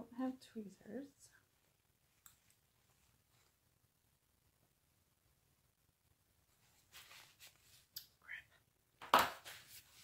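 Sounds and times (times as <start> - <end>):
woman whispering: 8.1 - 8.7.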